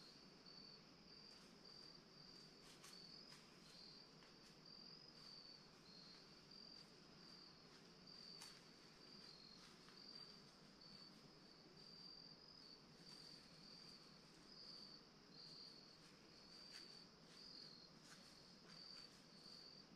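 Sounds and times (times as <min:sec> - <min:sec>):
crickets chirping: 0:00.0 - 0:19.9.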